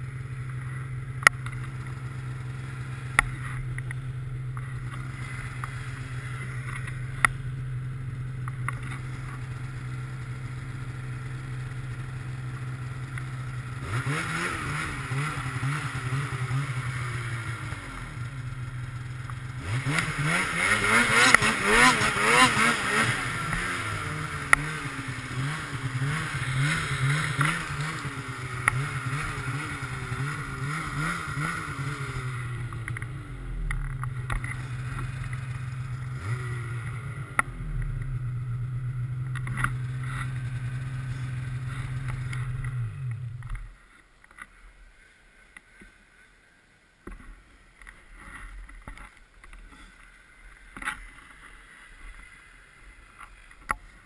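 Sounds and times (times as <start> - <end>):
snowmobile engine revving: 0.0 - 43.6.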